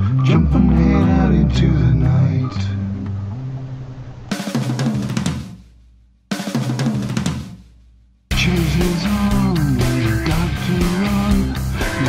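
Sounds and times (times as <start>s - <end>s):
rock drum kit breaks: 4.3s - 7.7s, 8.3s - 12.0s.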